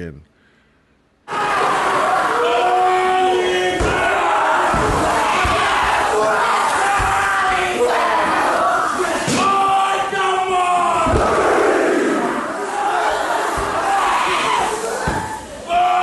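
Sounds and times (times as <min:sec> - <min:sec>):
men shouting and chanting in unison: 0:01.3 - 0:16.0.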